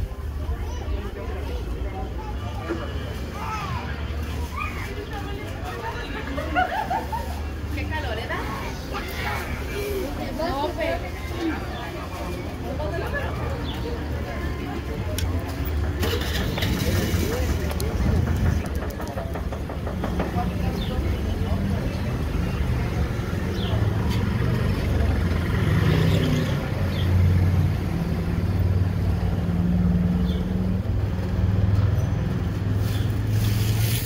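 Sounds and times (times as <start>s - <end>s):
people's voices: 0.0s - 34.0s
vehicle engine humming: 10.0s - 34.0s.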